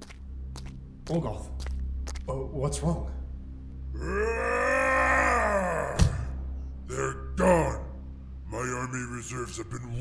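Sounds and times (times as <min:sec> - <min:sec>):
man groaning: 0:04.0 - 0:06.4.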